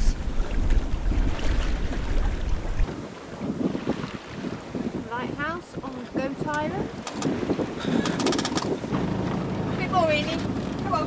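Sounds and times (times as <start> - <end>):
water rushing along hull: 0.0 - 11.0
wind buffeting microphone: 0.0 - 11.0.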